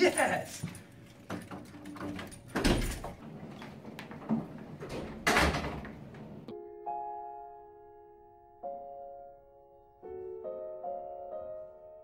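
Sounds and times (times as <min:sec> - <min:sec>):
wooden door thudding shut: 0:04.8 - 0:06.0.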